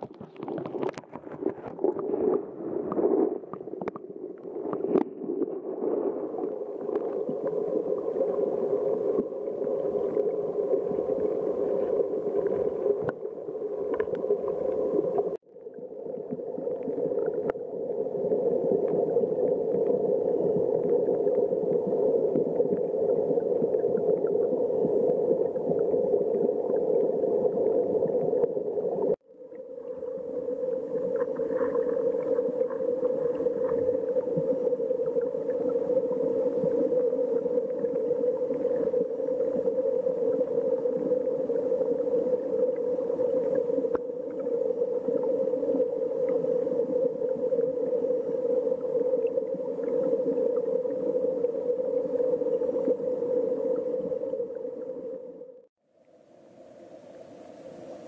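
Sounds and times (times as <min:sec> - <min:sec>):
underwater river current rushing: 0:00.0 - 0:55.6.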